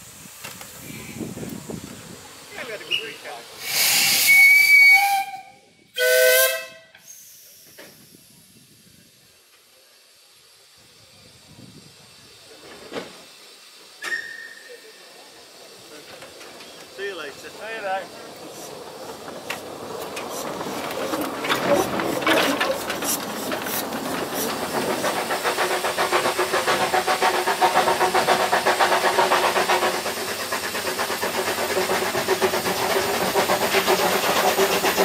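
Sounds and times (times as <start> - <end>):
steam hiss: 0.0 - 35.0
steam locomotive whistle blasts: 2.9 - 7.3, 14.0 - 14.9.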